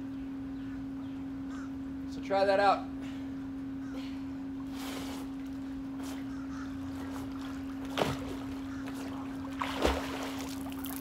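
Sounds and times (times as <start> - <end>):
steady hum: 0.0 - 11.0
pool water splashing: 7.0 - 11.0.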